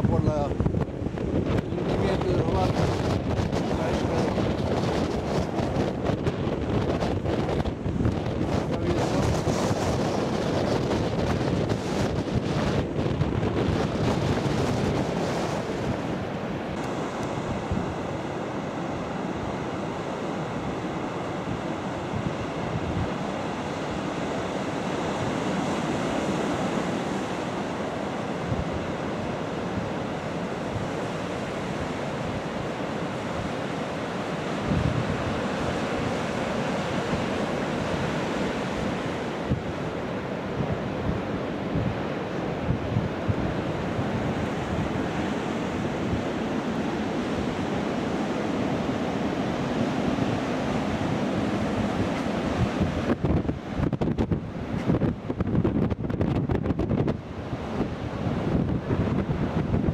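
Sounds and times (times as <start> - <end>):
surf breaking on a beach: 0.0 - 59.9
wind buffeting microphone: 0.0 - 59.9.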